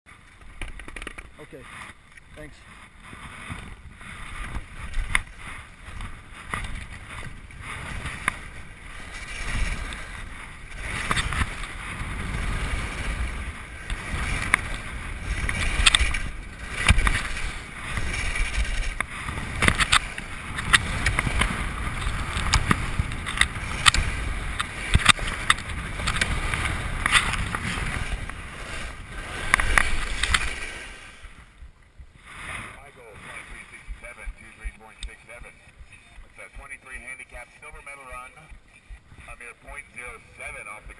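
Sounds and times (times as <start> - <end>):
skis scraping on snow: 0.1 - 40.9
wind rushing over microphone: 3.2 - 40.9.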